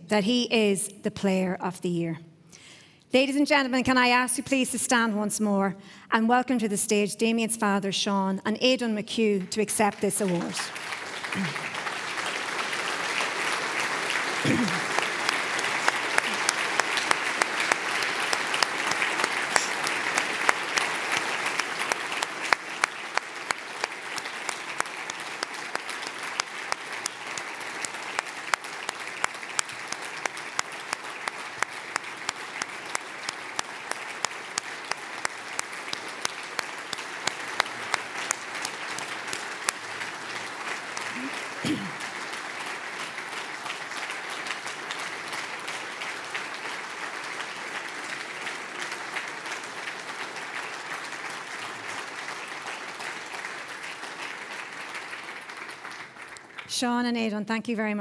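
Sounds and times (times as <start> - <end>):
audience applauding: 10.0 - 56.7.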